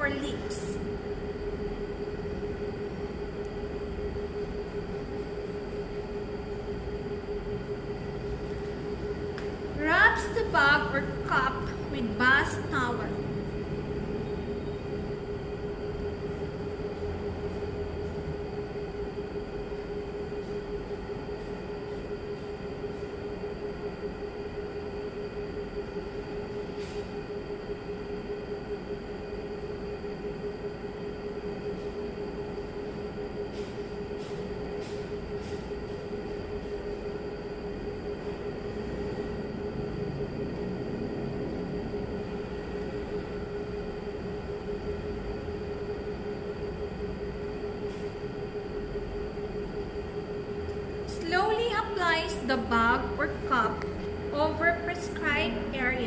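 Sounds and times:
steady mechanical hum: 0.0 - 56.0.

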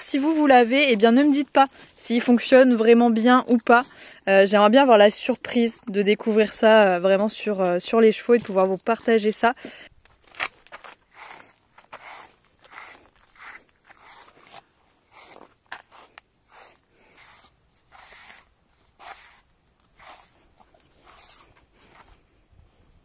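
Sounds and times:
hand rustling through horse mane: 10.6 - 22.4.

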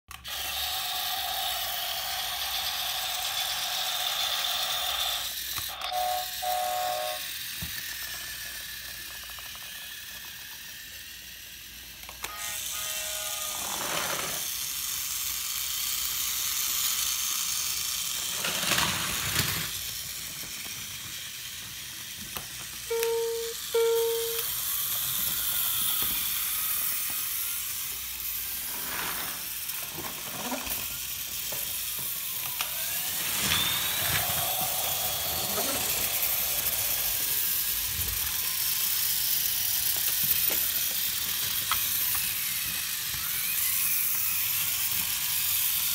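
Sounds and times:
toy train motors whirring: 0.1 - 45.9
electronic toy sound effects: 0.3 - 15.0, 22.8 - 28.5, 32.2 - 45.0.

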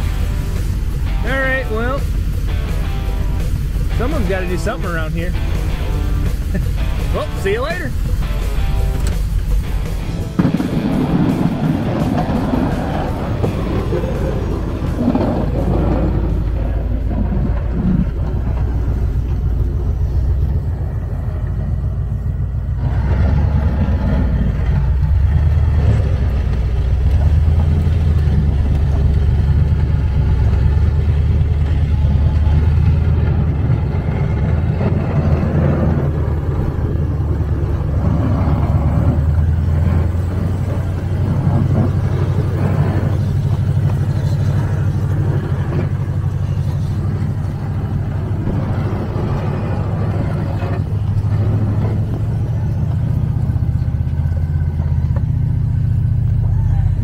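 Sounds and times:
plow blades scraping snow: 0.0 - 56.1
engine running under load: 0.0 - 57.0.

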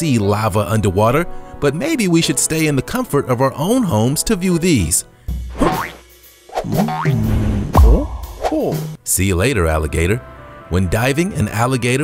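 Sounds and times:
music: 0.0 - 12.0
deep thump with falling sweep: 7.1 - 8.7.

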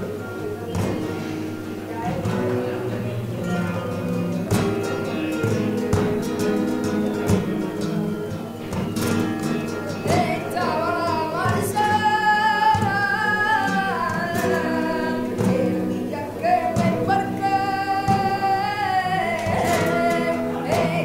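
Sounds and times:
flamenco guitars: 0.0 - 21.0
woman singing: 1.9 - 3.9, 9.9 - 21.0.

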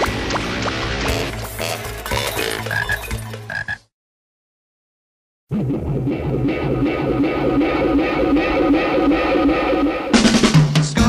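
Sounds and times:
pitched pulsing sound effect: 5.5 - 10.4.

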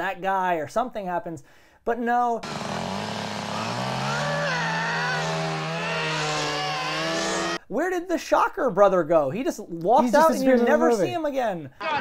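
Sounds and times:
chainsaw engine running: 2.4 - 7.6.

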